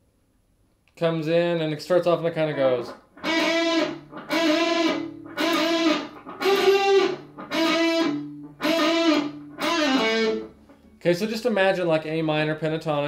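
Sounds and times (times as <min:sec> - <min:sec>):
electric guitar string bends: 0:02.3 - 0:11.0.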